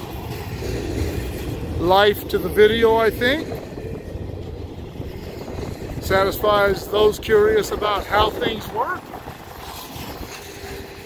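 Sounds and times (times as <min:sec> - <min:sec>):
freight train wheels rumbling: 0:00.0 - 0:11.0.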